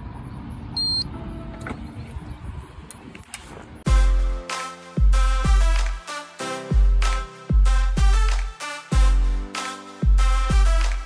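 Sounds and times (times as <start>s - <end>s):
card reader high beep: 0.8s - 1.2s
electronic music: 3.9s - 11.0s.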